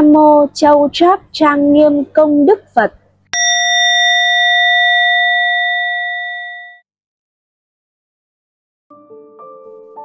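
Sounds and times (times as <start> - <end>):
bell ringing: 3.4 - 6.8.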